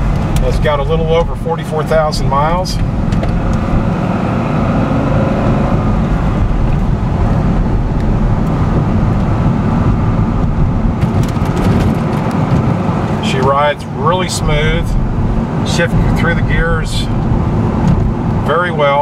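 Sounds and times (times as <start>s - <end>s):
car engine from inside cabin: 0.0s - 19.0s
tyre and road noise: 0.0s - 19.0s.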